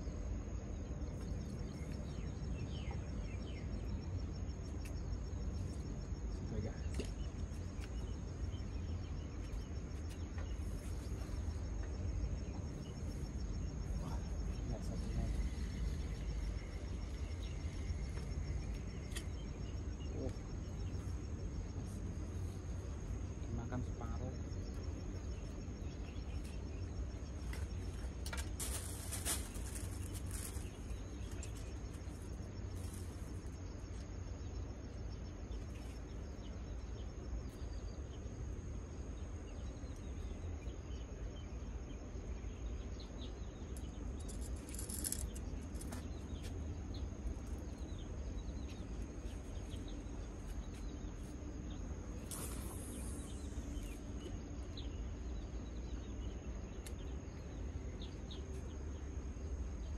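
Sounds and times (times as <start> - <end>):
steady low rumble: 0.0 - 59.9
short bursts of high hiss: 52.2 - 53.6.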